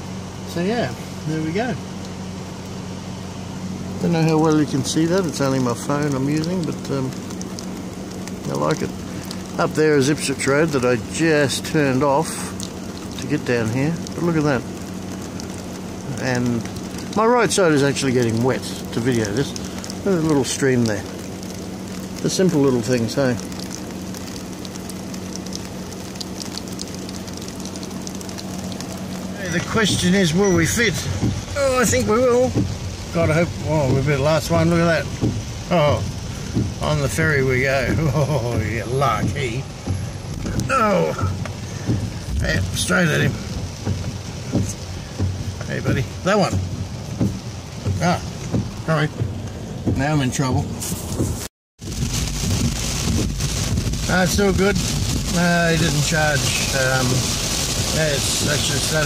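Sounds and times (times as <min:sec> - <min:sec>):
car engine idling: 0:00.0 - 0:59.0
drizzling rain: 0:00.0 - 0:59.0.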